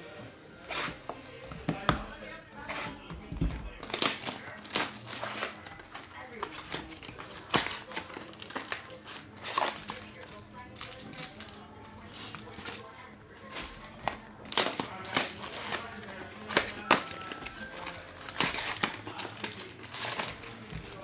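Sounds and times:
faint background music: 0:00.0 - 0:21.0
wrappers tearing and crinkling: 0:03.6 - 0:21.0.

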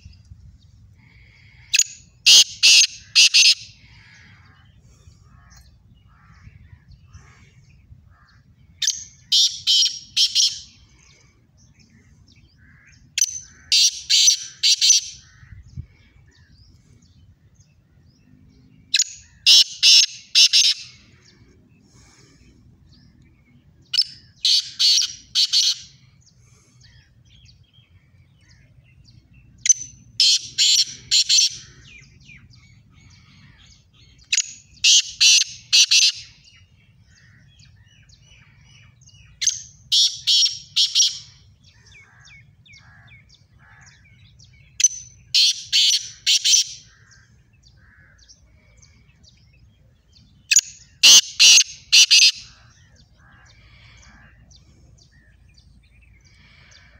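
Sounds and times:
francolin calling: 0:01.0 - 0:04.7, 0:50.5 - 0:55.3.

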